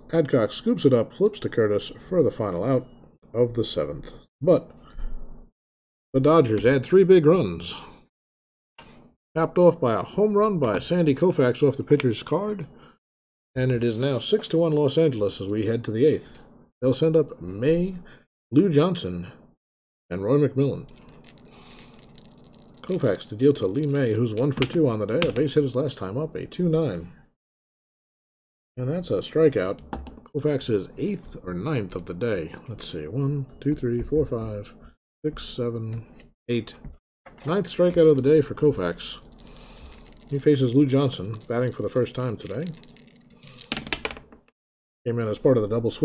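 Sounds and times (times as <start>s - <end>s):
dice rattling on a desk: 20.9s - 24.8s, 38.5s - 44.4s.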